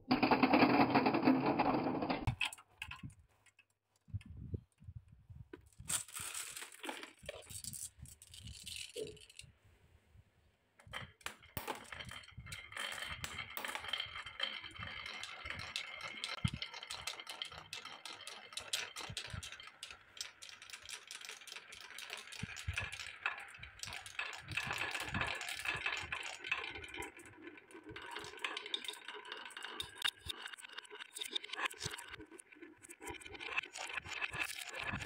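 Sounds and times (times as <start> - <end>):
marbles rattling along wooden tracks: 5.8 - 9.5, 10.8 - 35.0.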